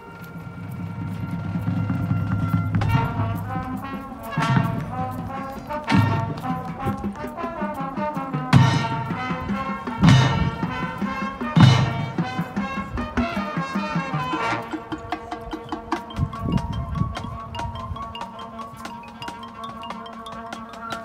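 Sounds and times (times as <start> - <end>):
marching band playing: 0.0 - 21.0
loud accented band hits: 0.4 - 16.1.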